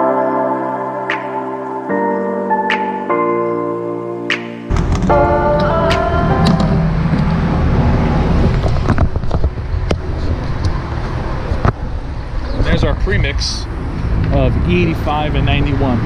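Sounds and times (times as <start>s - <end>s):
background music: 0.0s - 7.8s
low outdoor rumble: 4.7s - 16.0s.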